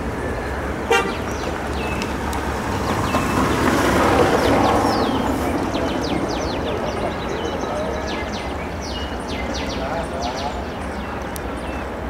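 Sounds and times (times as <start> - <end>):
broad rushing noise: 0.0 - 12.0
outdoor background noise: 0.0 - 12.0
small birds chirping: 0.0 - 12.0.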